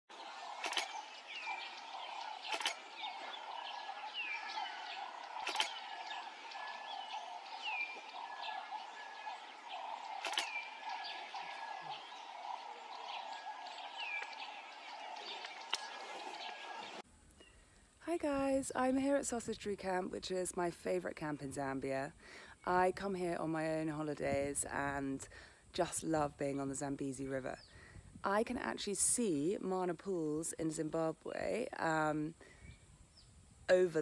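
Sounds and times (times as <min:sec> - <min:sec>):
birds chirping: 0:00.1 - 0:17.8
sharp clicks: 0:05.4 - 0:05.8.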